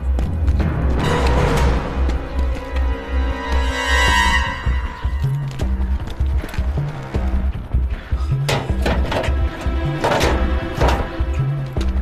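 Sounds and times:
driving low pulse: 0.0 - 12.0
tense action score: 0.0 - 12.0.

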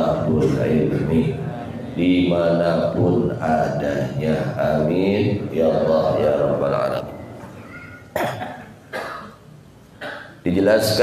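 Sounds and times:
man coughing into microphone: 8.1 - 9.4, 10.0 - 10.5.

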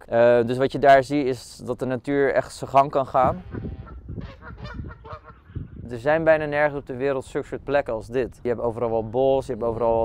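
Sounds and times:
faint geese honking: 3.1 - 6.0.

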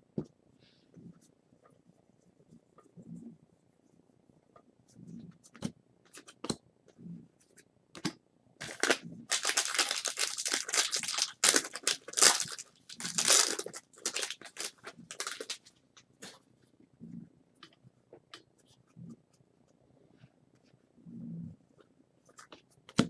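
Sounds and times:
foil wrapper tearing and rustling: 8.6 - 15.6.

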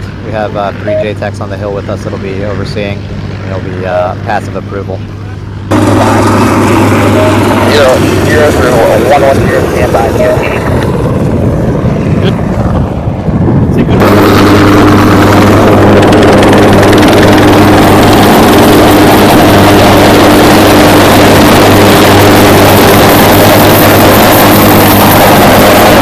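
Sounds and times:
helicopter engines and rotors: 0.0 - 26.0.

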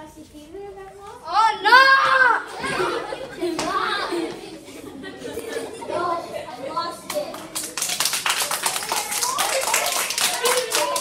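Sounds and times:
children calling out: 1.3 - 7.4, 8.5 - 11.0
children applauding: 7.1 - 11.0.

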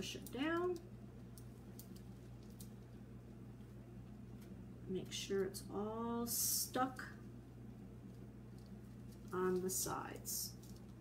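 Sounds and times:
steady low hum: 0.0 - 11.0
soft clicks and rustles: 0.1 - 4.6, 8.0 - 11.0.

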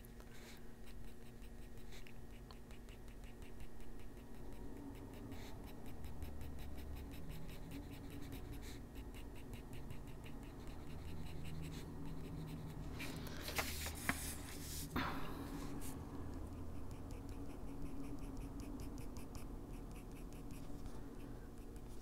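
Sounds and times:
colored pencil scratching on paper: 0.0 - 14.9, 15.6 - 22.0
paper sliding on desk: 13.0 - 15.0.

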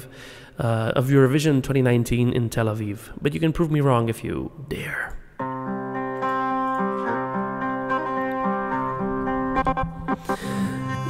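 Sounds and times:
instrumental backing track chords: 5.4 - 11.0.

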